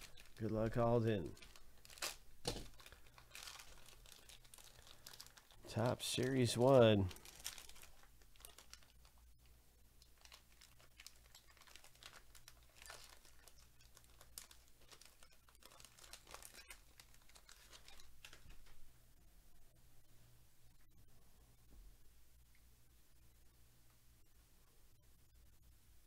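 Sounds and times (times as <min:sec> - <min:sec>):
wrapper crinkling and tearing: 0:00.0 - 0:09.2, 0:10.0 - 0:18.7.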